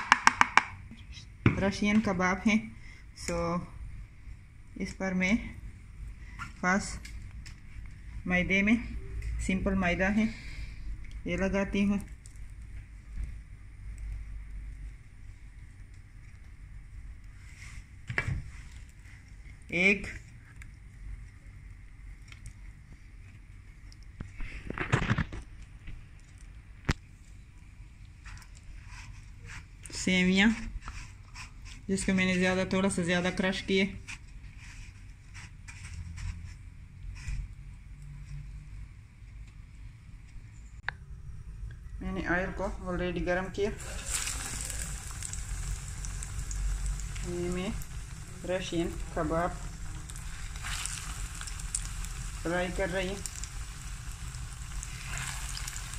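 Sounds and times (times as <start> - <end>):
food sizzling in hot oil: 43.8 - 55.9.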